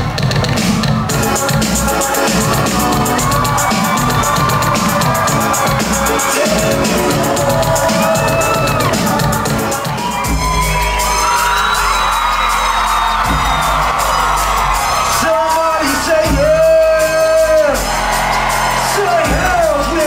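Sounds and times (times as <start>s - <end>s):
crowd whooping and yelling: 0.0s - 20.0s
heavy bass beat: 0.0s - 20.0s
live concert music over loudspeakers: 0.0s - 20.0s
hi-hats: 0.6s - 20.0s.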